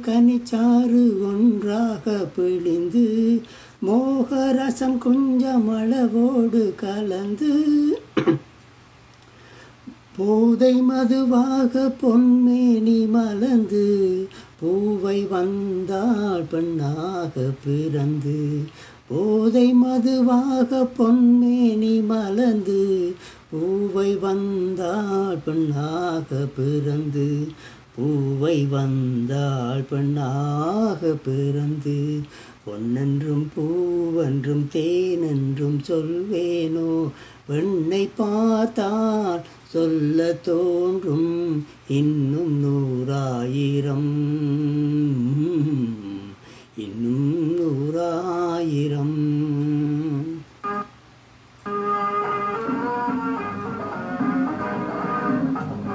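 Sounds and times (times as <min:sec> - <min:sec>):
man singing unaccompanied: 0:00.0 - 0:08.4, 0:09.8 - 0:50.9
instrumental chord: 0:50.6 - 0:51.0, 0:51.6 - 0:55.9.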